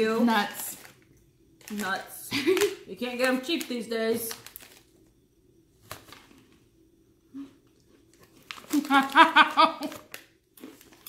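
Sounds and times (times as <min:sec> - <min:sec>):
crunch of snack bitten: 0:09.8 - 0:11.0.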